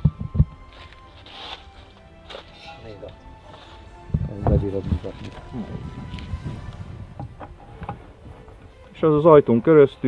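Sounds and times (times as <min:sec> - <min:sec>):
faint background music: 0:00.0 - 0:10.0
wooden beehive handling rustle: 0:00.2 - 0:09.0.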